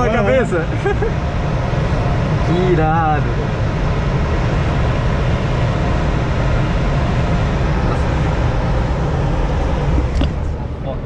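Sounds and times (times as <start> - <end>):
low uneven rumble: 0.0 - 11.0
rush of air noise: 0.0 - 11.0.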